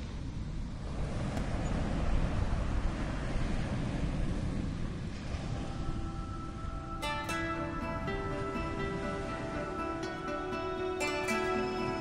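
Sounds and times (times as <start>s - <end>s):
sea waves: 0.0s - 12.0s
wind: 0.0s - 12.0s
faint held musical notes: 5.5s - 12.0s.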